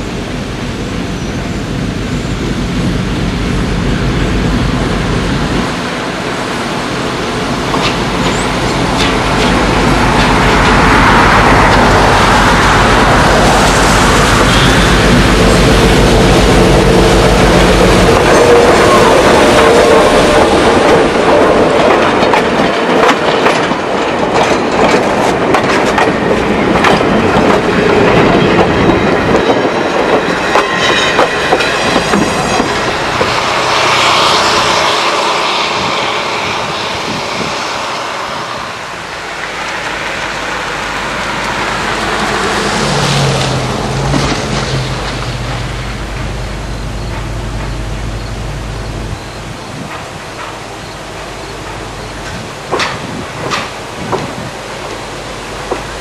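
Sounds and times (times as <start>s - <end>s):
diesel locomotive engine: 0.0s - 56.0s
train wheels clicking over rail joints: 7.5s - 37.8s, 41.4s - 56.0s.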